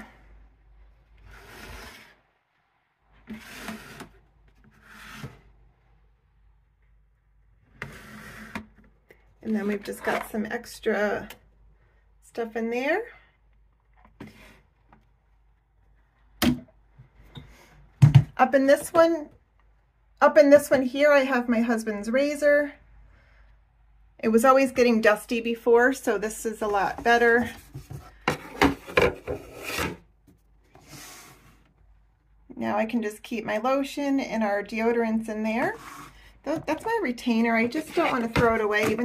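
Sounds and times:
basket lid scraping on wooden shelf: 0:01.2 - 0:02.2, 0:03.2 - 0:05.5, 0:07.7 - 0:08.8, 0:27.0 - 0:30.0, 0:35.7 - 0:36.9, 0:37.6 - 0:39.0
plastic basket knocking on wooden shelf: 0:18.0 - 0:18.4.

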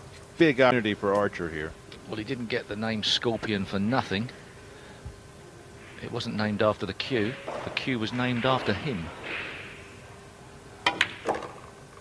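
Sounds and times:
cue tip striking ball: 0:07.2 - 0:10.2, 0:10.8 - 0:12.0
ball knocking into pocket: 0:07.4 - 0:08.7, 0:10.8 - 0:11.8
billiard balls clicking: 0:10.8 - 0:12.0.

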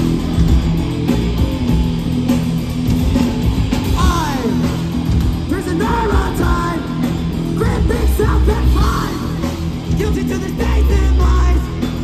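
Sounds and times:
heavy metal band playing: 0:00.0 - 0:12.0
yelled lead vocal: 0:03.6 - 0:12.0.

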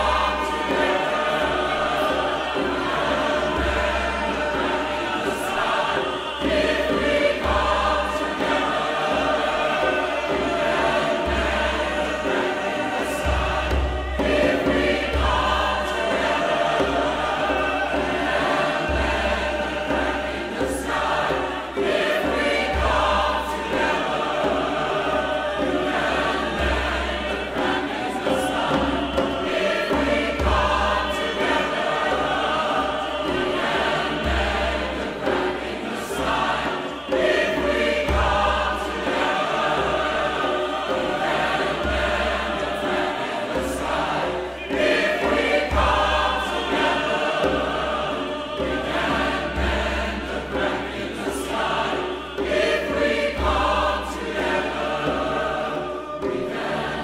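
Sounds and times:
choir singing: 0:00.0 - 0:57.0
deep drum beats: 0:00.0 - 0:57.0.

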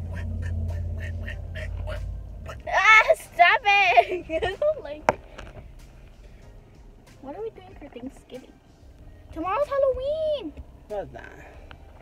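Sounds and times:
car engine rumble and road noise: 0:00.0 - 0:12.0.

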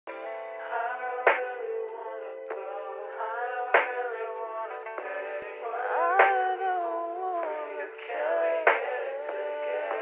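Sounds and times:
auto-tuned vocal melody: 0:00.1 - 0:10.0.

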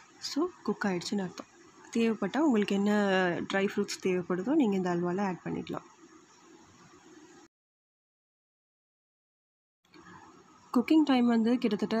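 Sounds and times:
faint room noise: 0:00.0 - 0:07.5.

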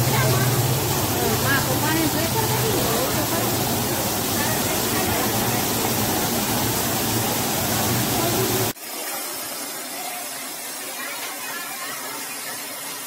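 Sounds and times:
water jet rushing hiss: 0:00.0 - 0:13.0.

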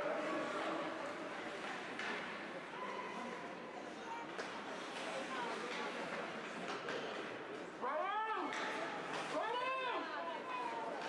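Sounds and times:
indoor ice rink background noise: 0:00.0 - 0:11.0.

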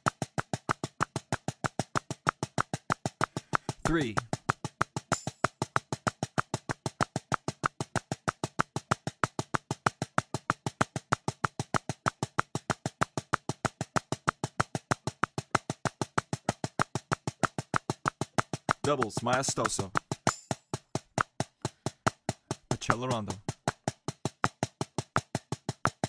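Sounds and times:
click track ticks: 0:18.7 - 0:20.2.

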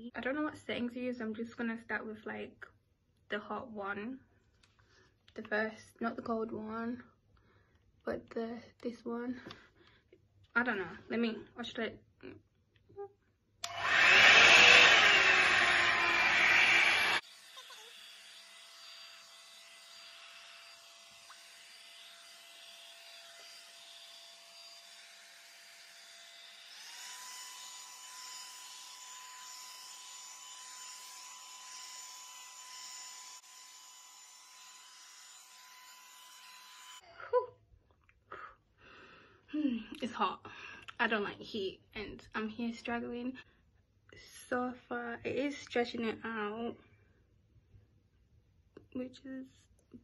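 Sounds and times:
hair dryer brush blowing: 0:13.6 - 0:17.2.

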